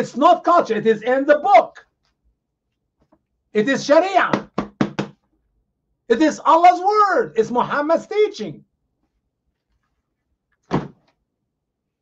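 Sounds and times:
book set down on desk: 10.6s - 11.2s.

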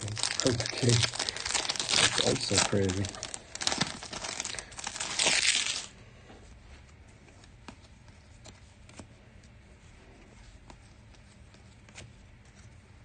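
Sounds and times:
foil wrapper crinkling: 0.0s - 5.9s
wrapper ripping: 0.0s - 5.9s.

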